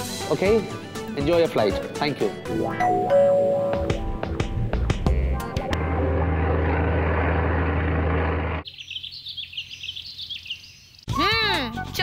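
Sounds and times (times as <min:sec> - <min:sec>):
faint birdsong chirps: 0:08.6 - 0:11.2.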